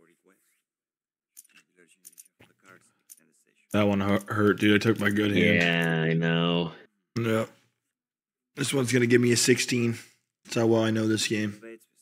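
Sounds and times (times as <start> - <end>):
faint man speaking: 5.0 - 7.5.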